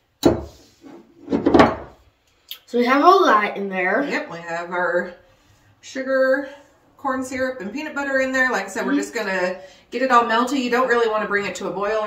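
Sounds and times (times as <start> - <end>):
spatula scraping a skillet: 0.4 - 1.5.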